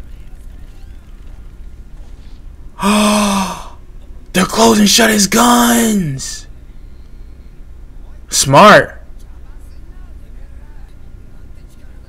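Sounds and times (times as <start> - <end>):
faint low hum: 0.0 - 12.0
man exclaiming oh: 2.8 - 3.8, 4.4 - 6.4.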